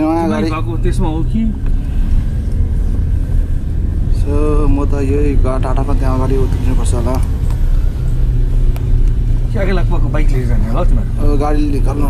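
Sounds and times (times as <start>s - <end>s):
people talking: 0.0s - 1.6s, 4.1s - 7.3s
car engine hum: 0.0s - 12.0s
road rumble: 0.0s - 12.0s.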